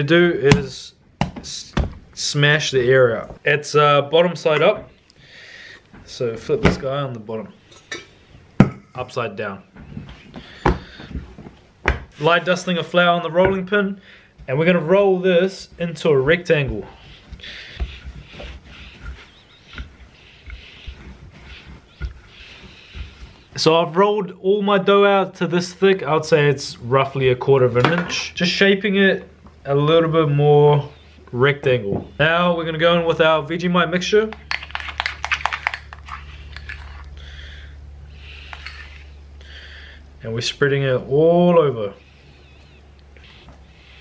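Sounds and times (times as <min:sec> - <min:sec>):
steady low hum: 0:00.0 - 0:44.0
rolling pin swishing on dough: 0:12.1 - 0:13.2, 0:14.4 - 0:24.0
sticky scraping of paste: 0:12.1 - 0:13.6, 0:14.5 - 0:23.9, 0:34.3 - 0:37.3, 0:38.1 - 0:39.2.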